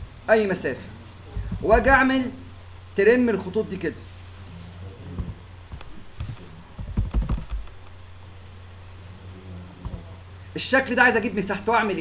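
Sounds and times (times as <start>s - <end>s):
steady low hum: 0.0s - 12.0s
keyboard keystrokes: 6.8s - 8.8s.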